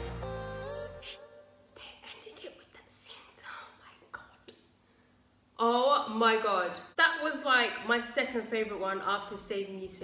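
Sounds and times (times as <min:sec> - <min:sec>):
woman whispering: 0:01.7 - 0:04.6.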